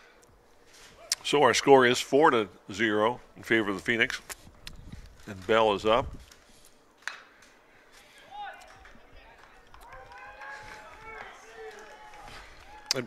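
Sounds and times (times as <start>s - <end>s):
bat cracking on baseball: 7.0s - 7.6s
faint distant shouts: 7.9s - 13.0s.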